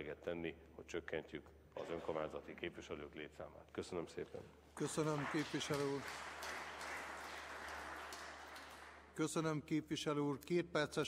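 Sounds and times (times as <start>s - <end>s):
applause: 4.8s - 9.3s.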